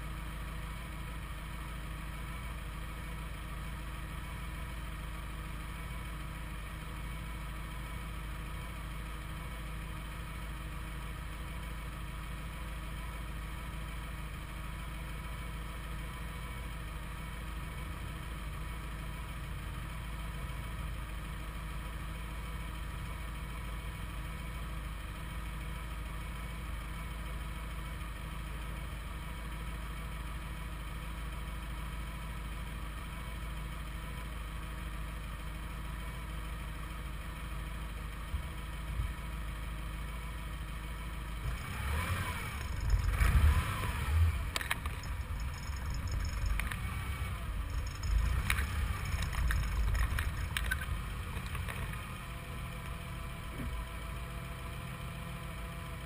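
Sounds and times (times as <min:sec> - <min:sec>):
distant car engines droning: 0:00.0 - 0:56.0
engine note rising and falling: 0:41.4 - 0:52.0.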